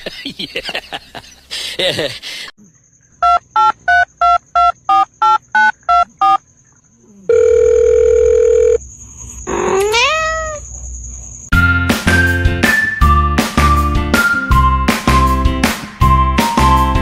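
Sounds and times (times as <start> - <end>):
telephone keypad beeps: 3.2 - 6.4
steady telephone tone: 7.3 - 8.8
cat meowing: 9.5 - 10.6.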